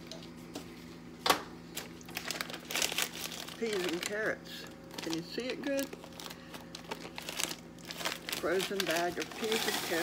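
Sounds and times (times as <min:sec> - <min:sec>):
plastic bag crinkling: 0:01.7 - 0:10.0.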